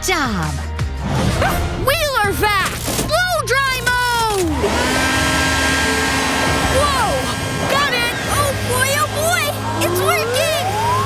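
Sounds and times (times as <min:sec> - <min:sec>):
background music: 0:00.0 - 0:11.0
mechanical whir: 0:02.4 - 0:11.0.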